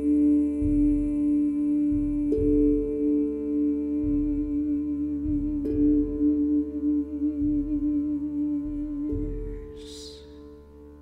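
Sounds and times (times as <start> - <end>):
soft low drum beats: 0.0 - 11.0
tongue steel drum ringing: 0.0 - 11.0
woman humming: 0.0 - 11.0.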